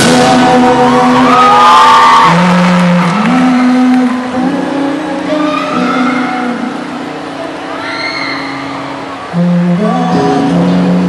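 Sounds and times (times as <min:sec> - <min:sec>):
low bass line: 0:00.0 - 0:04.9
live rock band: 0:00.0 - 0:11.0.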